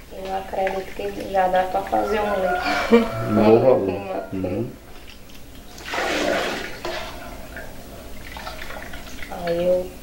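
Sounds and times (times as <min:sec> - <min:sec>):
milk sloshing in a metal pot: 0:00.2 - 0:02.5, 0:05.7 - 0:09.6.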